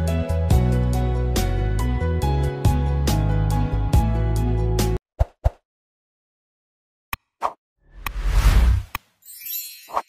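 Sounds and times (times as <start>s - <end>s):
whoosh: 8.0s - 9.0s.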